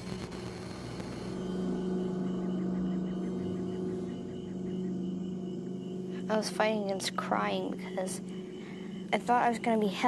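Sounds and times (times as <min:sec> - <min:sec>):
low droning tone: 0:00.0 - 0:10.0.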